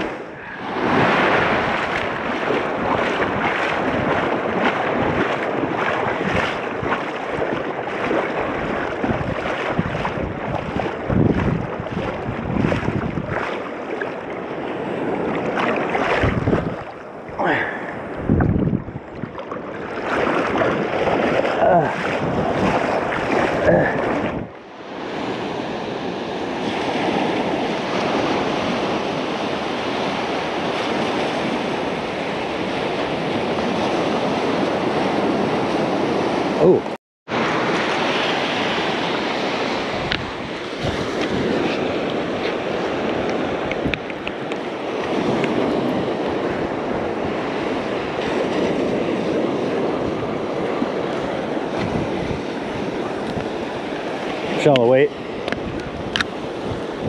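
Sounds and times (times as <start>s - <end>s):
wind buffeting microphone: 0.0s - 36.6s, 37.3s - 57.0s
ocean surf breaking: 0.0s - 57.0s.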